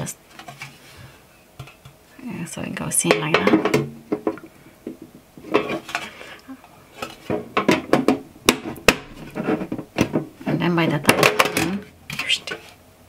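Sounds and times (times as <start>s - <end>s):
metal lid rattling and clicking: 11.0s - 12.4s.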